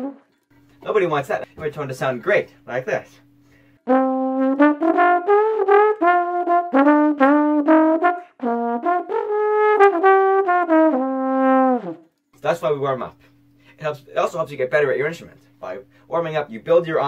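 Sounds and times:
trombone playing melody: 0.0s - 0.4s, 3.8s - 12.1s.

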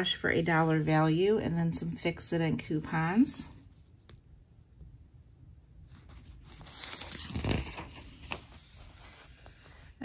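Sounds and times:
newspaper page rustling: 5.9s - 10.0s.

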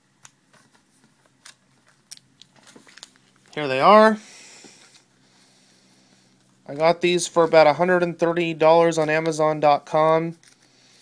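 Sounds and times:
handling foil card packs: 0.1s - 11.0s.

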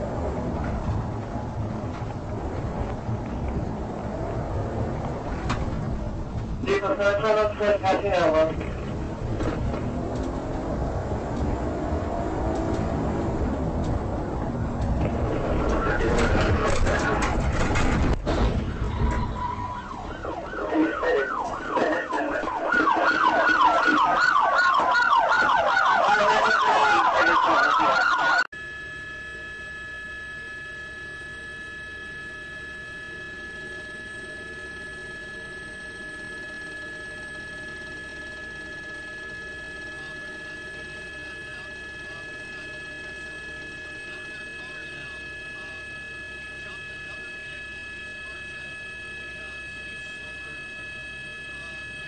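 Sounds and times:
police siren yelp and wail: 0.0s - 52.0s
steady tones: 0.0s - 52.0s.

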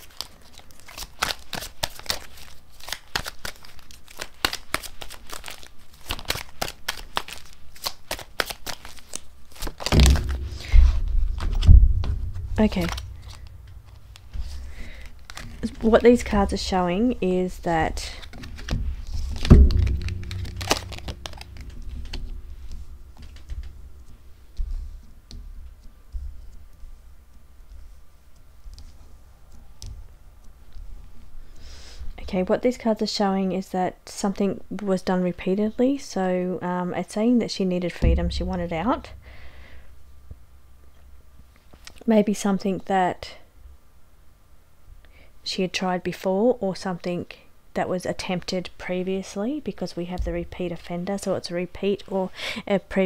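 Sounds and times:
cards being shuffled: 0.0s - 10.0s, 12.6s - 16.5s, 18.0s - 27.0s
soft low thumps: 9.9s - 18.0s, 18.7s - 24.8s, 38.0s - 40.5s.

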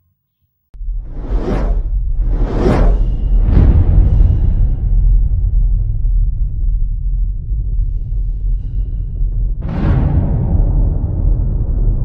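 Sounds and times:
whooshes: 0.8s - 6.5s
deep low rumble: 0.8s - 12.0s.

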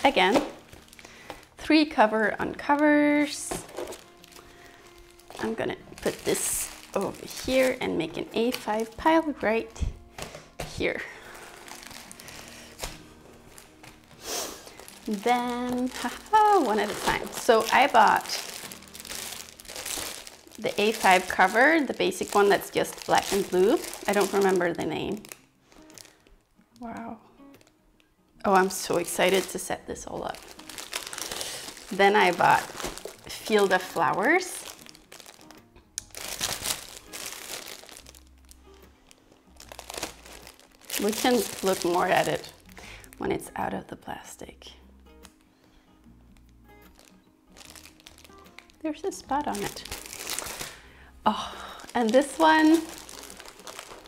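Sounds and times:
plastic packaging crinkling: 0.0s - 1.6s, 2.3s - 26.4s, 28.5s - 43.2s, 46.4s - 54.0s
plastic wrapping rustling: 0.0s - 26.9s, 27.5s - 27.8s, 28.5s - 43.2s, 46.4s - 54.0s
faint background music: 0.0s - 54.0s.

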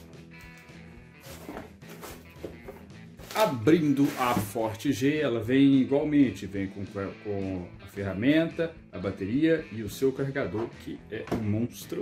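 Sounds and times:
soft background music: 0.0s - 12.0s
cardboard box rustling: 1.2s - 4.6s.

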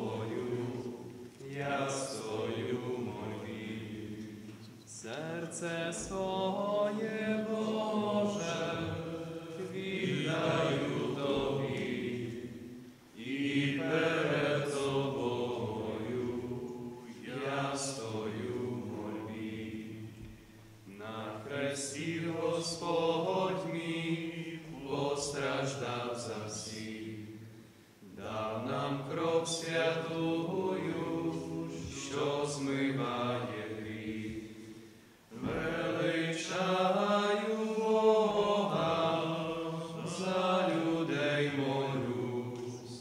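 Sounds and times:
men singing a slow hymn: 0.0s - 43.0s.

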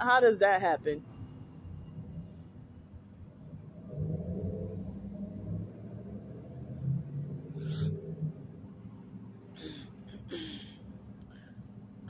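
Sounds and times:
vehicle engine rumble: 0.0s - 12.0s.

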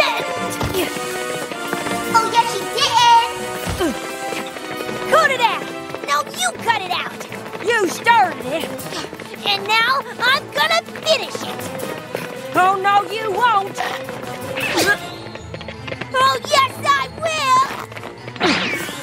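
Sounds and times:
background music: 0.0s - 19.0s.

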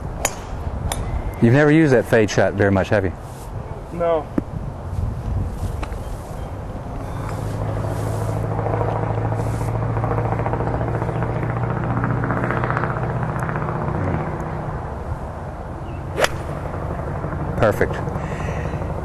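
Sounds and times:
motor low drone: 5.3s - 19.0s.

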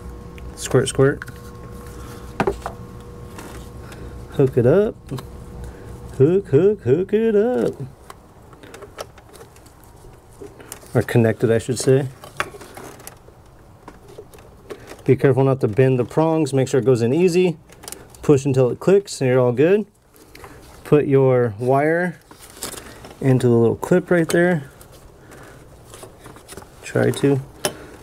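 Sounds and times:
low steady hum: 0.0s - 28.0s
person speaking: 4.3s - 8.0s, 10.8s - 12.2s, 15.0s - 17.6s, 20.8s - 22.3s, 23.2s - 24.8s, 26.8s - 27.6s
small handling ticks and rustles: 7.5s - 19.0s, 19.8s - 28.0s.

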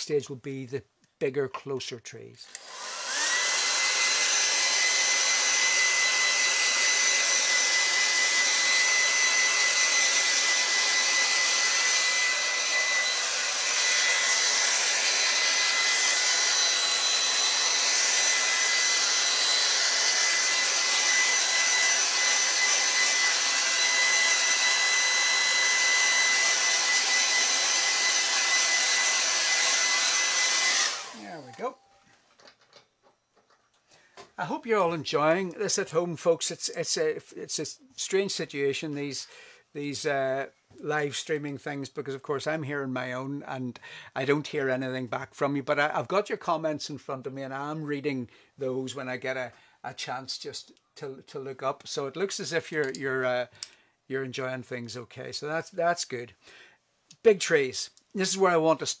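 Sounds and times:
hair dryer running: 2.5s - 31.8s.

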